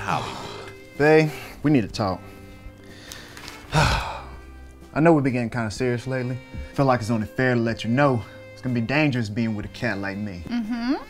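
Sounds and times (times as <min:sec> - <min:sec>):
quiet background music: 0:00.0 - 0:11.0
man sighing: 0:03.4 - 0:04.4.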